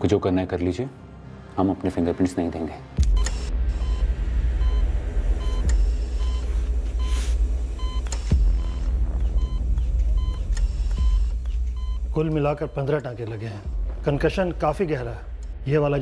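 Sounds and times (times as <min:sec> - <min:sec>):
patient monitor beeping: 0:03.1 - 0:13.8
deep low rumble: 0:03.5 - 0:12.1, 0:13.6 - 0:16.0.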